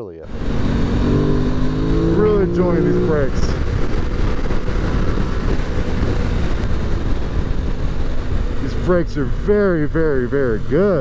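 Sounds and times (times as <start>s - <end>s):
motorcycle engine running: 0.3s - 11.0s
wind rushing over microphone: 0.3s - 11.0s.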